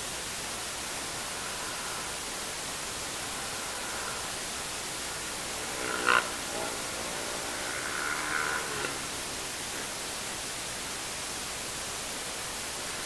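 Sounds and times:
camera microphone hiss: 0.0s - 13.0s.

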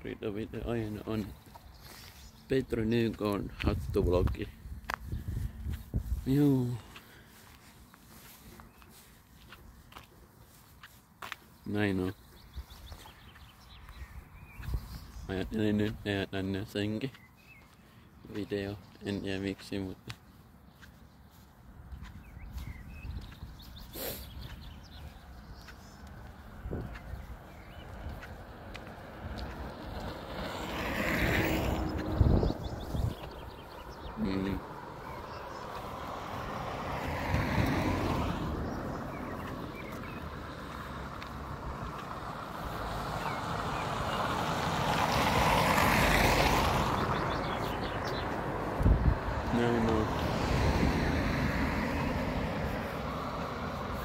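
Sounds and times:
footsteps: 1.2s - 14.0s, 19.6s - 50.6s
wind rumble on microphone: 3.4s - 6.4s, 13.9s - 15.3s, 21.9s - 28.5s, 29.3s - 34.2s, 46.1s - 53.0s
vehicle passing by: 24.0s - 54.0s.

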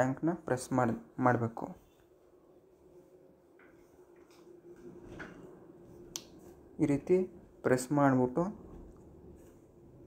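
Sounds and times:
person speaking: 0.0s - 1.9s, 6.8s - 8.7s
faint steady hum: 0.0s - 10.0s.

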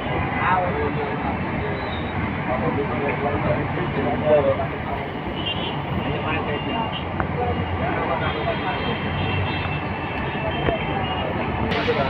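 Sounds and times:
indistinct voices talking: 0.0s - 12.0s
traffic noise: 0.0s - 12.0s.

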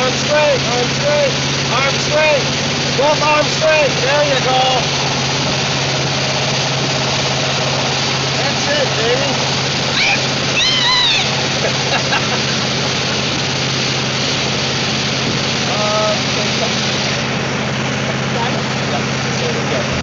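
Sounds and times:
motorboat engine running: 0.0s - 20.0s
water spray: 0.0s - 20.0s
rushing wind: 1.3s - 19.3s.

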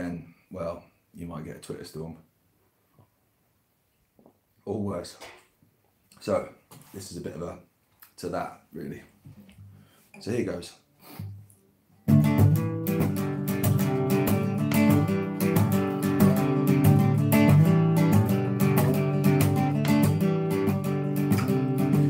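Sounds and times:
acoustic guitar strumming: 12.0s - 22.0s.

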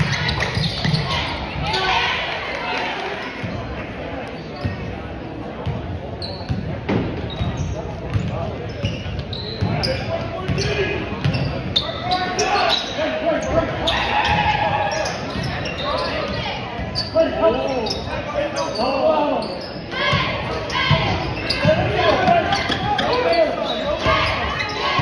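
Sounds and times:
sneaker squeaks: 0.0s - 2.0s, 4.3s - 5.0s, 5.6s - 25.0s
spectators' voices echoing: 0.0s - 25.0s.

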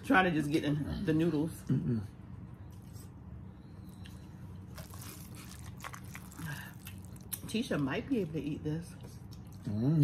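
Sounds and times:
steady low hum: 0.0s - 10.0s
food chewing: 3.8s - 10.0s
noodles being slurped: 4.7s - 7.4s.

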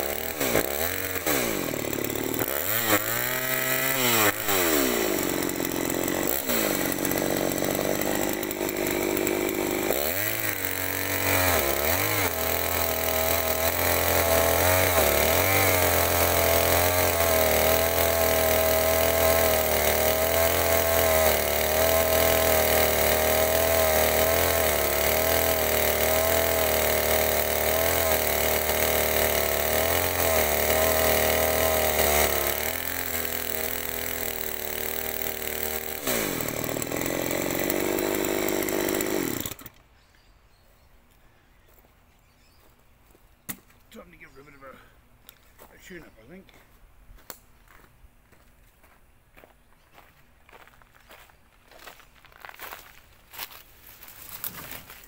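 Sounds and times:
chainsaw cutting through log: 0.0s - 39.8s, 53.3s - 55.0s.

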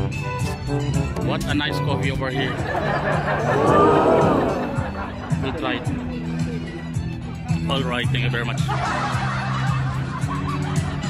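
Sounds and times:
music with held bass notes: 0.0s - 11.0s
person laughing: 2.4s - 5.9s.

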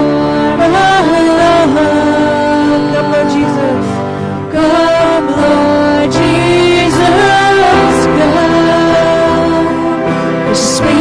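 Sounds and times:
electric keyboard: 0.0s - 11.0s
woman singing: 0.0s - 11.0s.

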